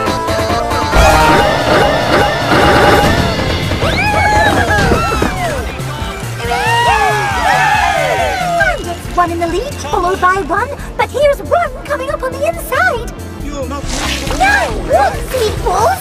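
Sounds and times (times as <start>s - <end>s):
loud crash: 0.9s - 5.9s.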